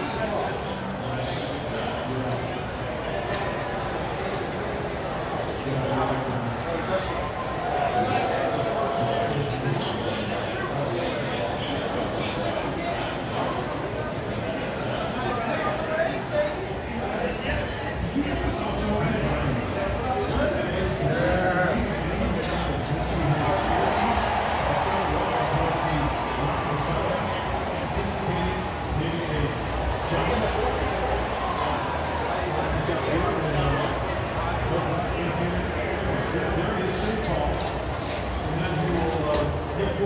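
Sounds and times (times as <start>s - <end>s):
people talking: 0.0s - 40.0s.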